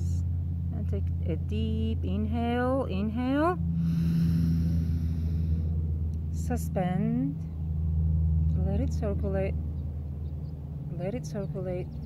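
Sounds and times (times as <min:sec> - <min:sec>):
low rumble: 0:00.0 - 0:12.0
deep breath through nose: 0:03.8 - 0:05.8.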